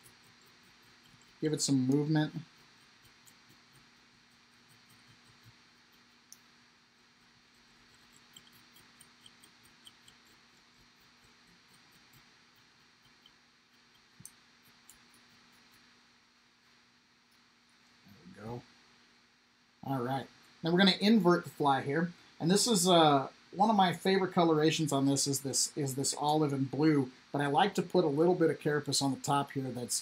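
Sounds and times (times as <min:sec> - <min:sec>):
pick scratching fibers: 0:00.0 - 0:16.0
faint ticks and scratches: 0:00.0 - 0:18.7, 0:19.8 - 0:30.0.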